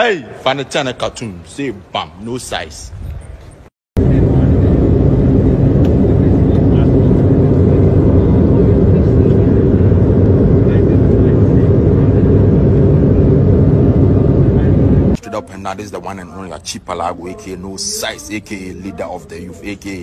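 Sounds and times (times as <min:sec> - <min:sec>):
low mechanical drone: 0:03.0 - 0:15.2.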